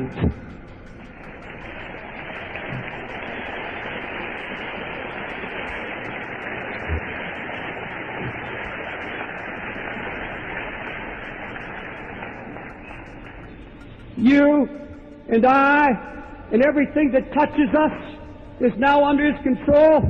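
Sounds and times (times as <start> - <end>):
recording hiss: 0.0 - 19.6.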